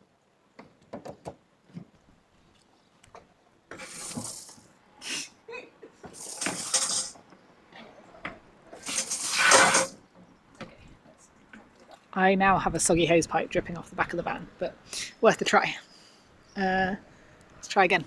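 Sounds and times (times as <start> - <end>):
hose water spurting into plastic container: 3.7 - 4.6, 8.8 - 10.0.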